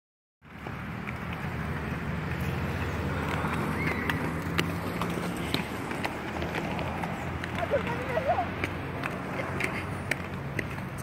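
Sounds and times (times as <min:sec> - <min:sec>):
skate wheels rolling on concrete: 0:00.4 - 0:11.0
skates clicking on ground: 0:00.4 - 0:11.0.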